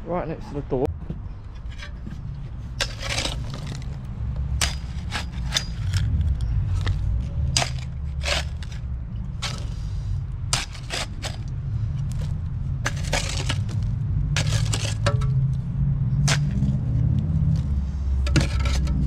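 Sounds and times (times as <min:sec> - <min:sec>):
steady low rumble: 0:00.0 - 0:19.0
metal shovel digging stony soil: 0:01.6 - 0:15.6, 0:16.2 - 0:19.0.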